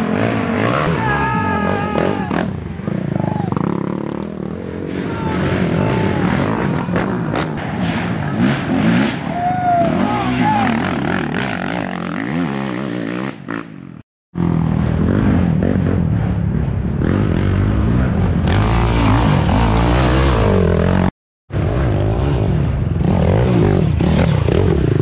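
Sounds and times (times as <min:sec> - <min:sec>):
quad engines revving: 0:00.0 - 0:25.0.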